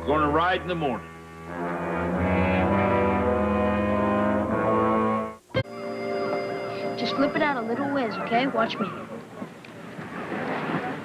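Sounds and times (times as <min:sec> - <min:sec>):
brass transition music chord: 0:00.3 - 0:07.1
quiet steady tone: 0:03.9 - 0:09.9.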